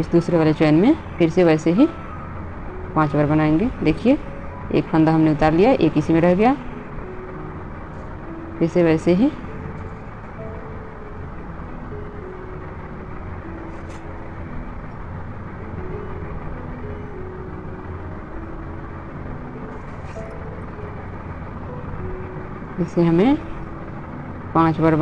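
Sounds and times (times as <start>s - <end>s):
background hum and hiss: 0.0s - 25.0s
faint background music: 0.0s - 25.0s.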